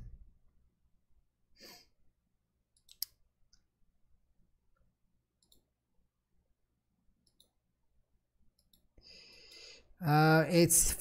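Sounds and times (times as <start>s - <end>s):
computer mouse clicking: 2.7s - 3.2s, 5.4s - 5.7s, 7.2s - 7.6s, 8.5s - 8.9s.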